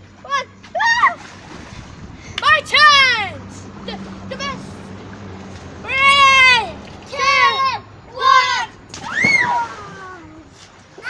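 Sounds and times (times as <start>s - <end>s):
water splashing in paddling pool: 0.0s - 11.0s
children shouting and squealing: 0.2s - 1.4s, 2.2s - 4.8s, 5.8s - 11.0s.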